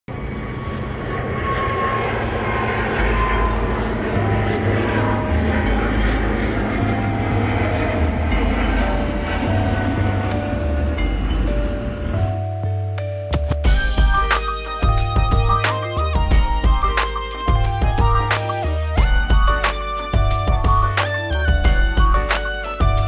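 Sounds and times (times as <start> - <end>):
steady dense rumble: 0.1 - 12.4
intro music with bass line: 13.0 - 23.0.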